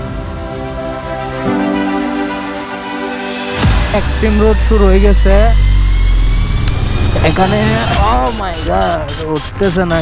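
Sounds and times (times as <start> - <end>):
motorcycle engine rumbling: 3.6 - 10.0.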